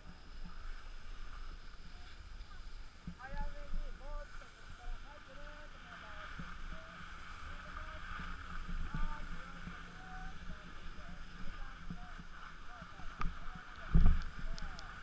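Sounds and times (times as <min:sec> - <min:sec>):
skis sliding over snow: 0:00.0 - 0:15.0
wind rumbling on microphone: 0:00.0 - 0:15.0.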